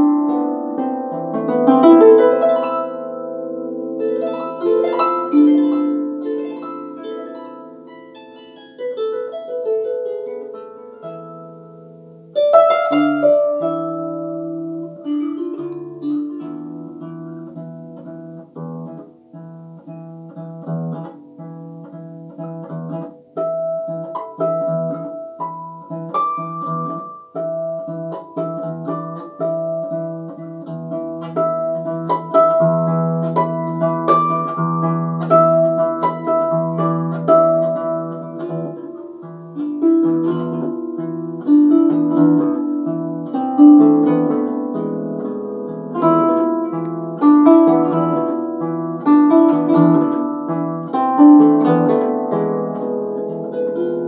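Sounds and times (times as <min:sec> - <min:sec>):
harp playing: 0:00.0 - 0:54.0.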